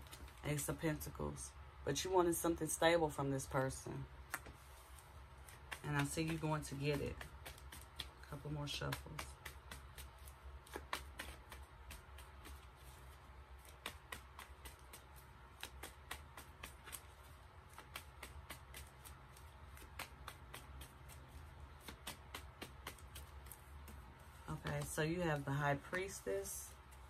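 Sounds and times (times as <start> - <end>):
cards clicking while shuffled: 5.5 - 12.9, 13.6 - 25.0.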